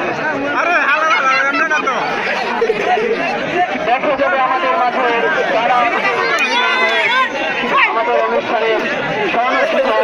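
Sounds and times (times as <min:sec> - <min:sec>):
crowd babble: 0:00.0 - 0:10.0.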